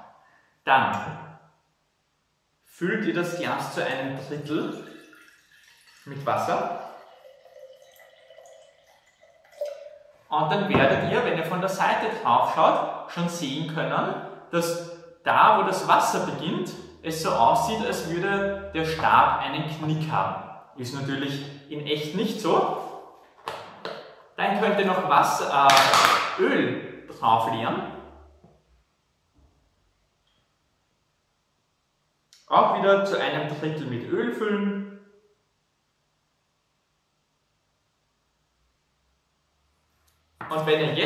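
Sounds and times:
water pouring into a glass jar: 3.6s - 11.3s
water trickling and dripping: 3.8s - 11.2s.

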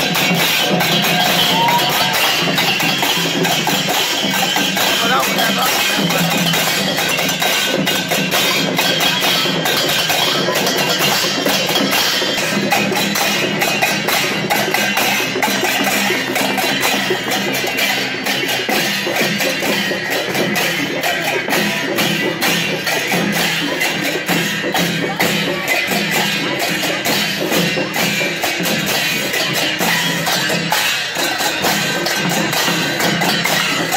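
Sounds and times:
drums: 0.0s - 33.9s
hand cymbals clashing: 0.0s - 33.9s.

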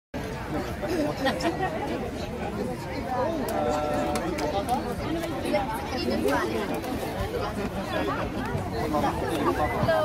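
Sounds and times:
people chatting: 0.2s - 10.0s.

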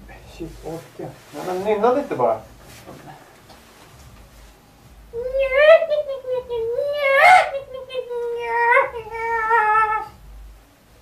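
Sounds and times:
person singing a high wavering wail: 5.2s - 10.2s.

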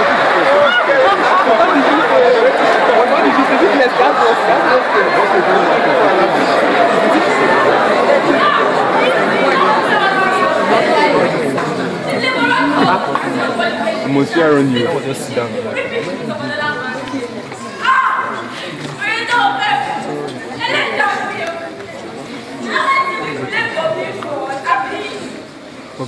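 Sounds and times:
babble of voices talking: 0.0s - 26.0s.

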